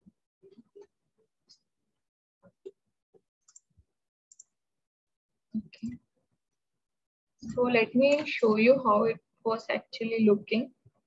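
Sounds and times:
computer mouse clicks: 3.4 - 4.6, 7.4 - 8.4.

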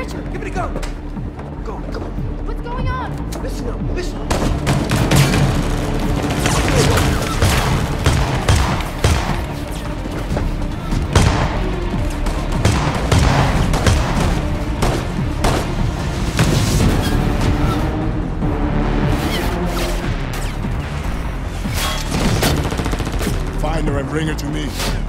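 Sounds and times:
dramatic music score: 0.0 - 25.0
gunshots: 4.3 - 9.8, 11.1 - 16.8, 21.6 - 23.6.

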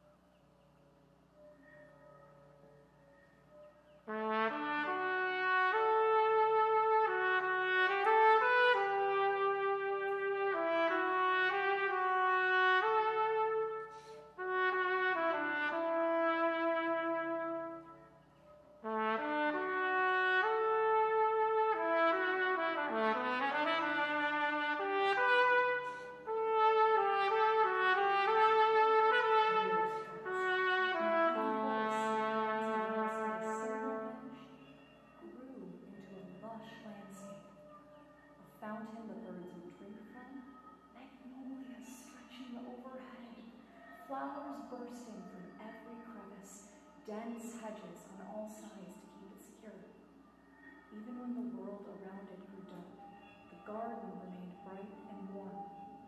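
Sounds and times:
solo trumpet slow melody: 4.0 - 37.4.

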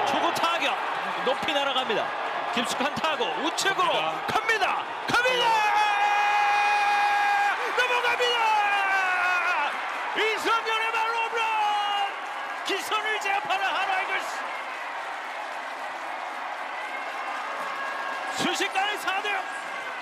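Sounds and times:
applause: 0.0 - 20.0
stadium crowd noise: 0.0 - 20.0
commentator shouting: 2.6 - 12.1.

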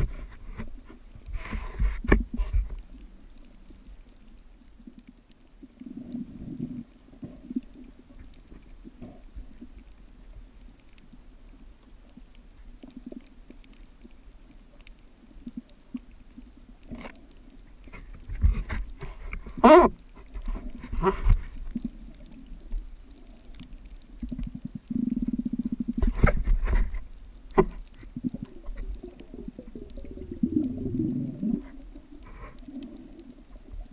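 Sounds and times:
muffled underwater rumble: 0.0 - 33.9.

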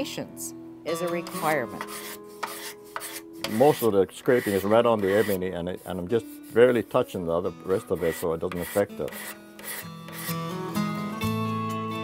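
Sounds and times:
soft background music: 0.0 - 12.0
scraper blade scraping wood: 1.1 - 6.8, 7.7 - 10.4.

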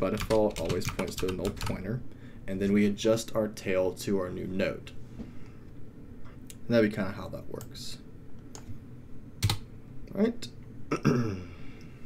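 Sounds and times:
computer keyboard keystrokes: 0.0 - 1.8, 9.4 - 9.6.

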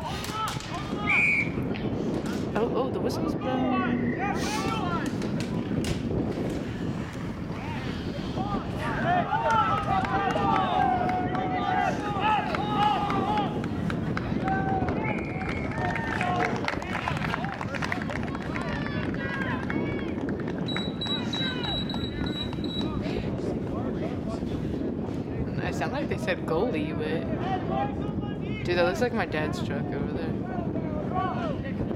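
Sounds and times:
players and spectators shouting: 7.5 - 13.6.

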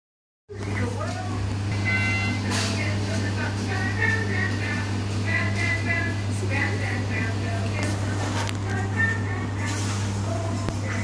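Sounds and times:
low electrical hum: 0.5 - 11.0
electronic tone: 1.7 - 2.6.

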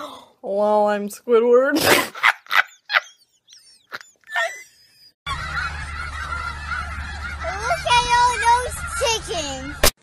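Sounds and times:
young woman laughing: 1.8 - 5.2.

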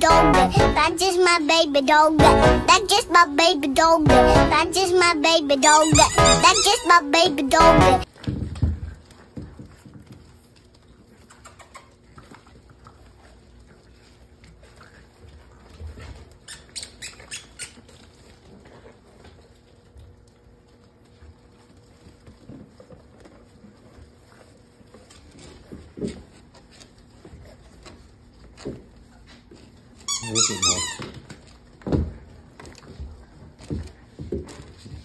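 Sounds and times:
puppy high squeaks: 5.6 - 7.1, 16.5 - 17.8, 30.1 - 31.1.

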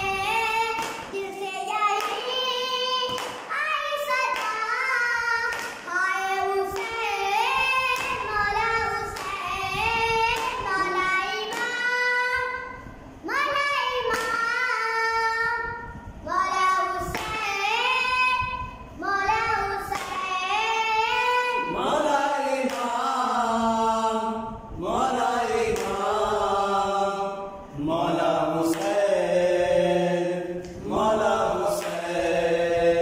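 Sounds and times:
boy singing a lament: 0.0 - 15.7, 16.3 - 33.0.

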